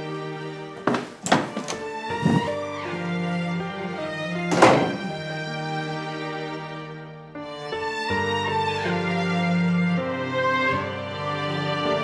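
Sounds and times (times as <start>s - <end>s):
thuds of people moving: 0.8s - 2.5s.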